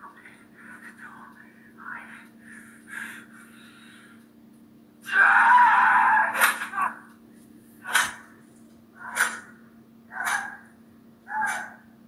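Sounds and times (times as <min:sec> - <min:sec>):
loud scream: 0:05.0 - 0:07.0.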